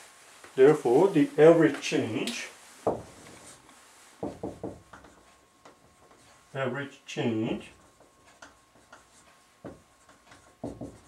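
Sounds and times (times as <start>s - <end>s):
marker tapping on whiteboard: 4.2s - 6.3s, 7.8s - 11.0s.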